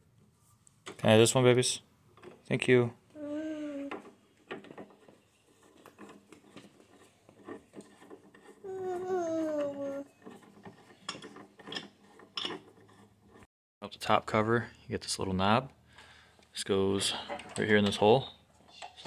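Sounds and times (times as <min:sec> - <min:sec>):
toddler making a falling mm sound: 0:03.2 - 0:04.0, 0:08.6 - 0:10.1.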